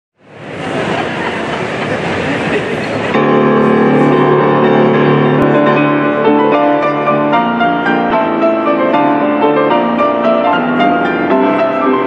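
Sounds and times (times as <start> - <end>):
dense rushing noise: 0.2 - 12.0
grand piano chord: 3.1 - 12.0.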